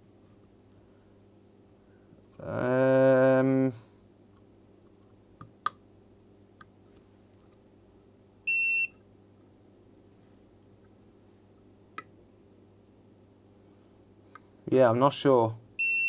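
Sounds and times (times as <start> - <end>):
multimeter continuity beep: 8.5 - 9.0, 15.8 - 16.0.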